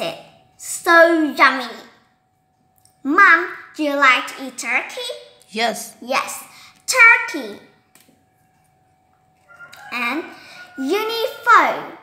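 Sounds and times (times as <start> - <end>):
girl speaking: 0.0 - 2.0, 3.0 - 7.8, 9.9 - 12.0.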